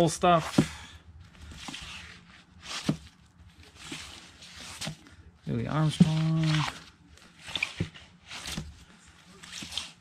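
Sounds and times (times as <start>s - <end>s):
record sleeves sliding and scraping: 1.3s - 5.1s, 5.8s - 10.0s.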